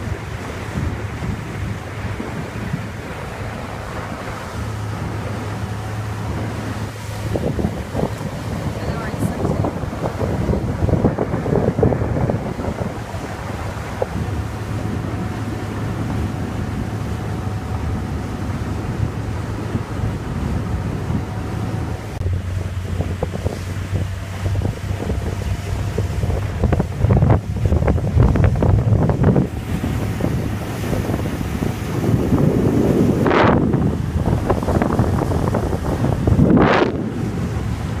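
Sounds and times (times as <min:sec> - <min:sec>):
boat engine drone: 0:00.0 - 0:38.0
water slapping against hull: 0:00.0 - 0:38.0
wind buffeting microphone: 0:00.0 - 0:38.0.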